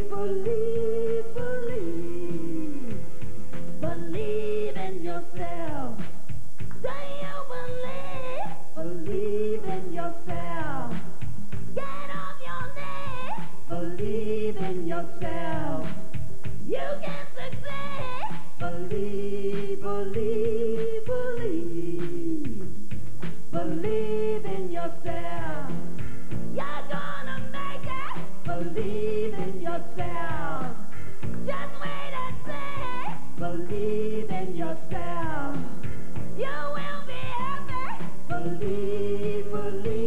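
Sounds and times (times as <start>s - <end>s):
person singing: 0.0s - 3.1s, 3.8s - 6.0s, 6.8s - 11.0s, 11.8s - 22.7s, 23.5s - 25.8s, 26.6s - 30.9s, 31.5s - 35.8s, 36.4s - 40.0s
steady drum beat: 9.0s - 12.0s, 13.6s - 40.0s.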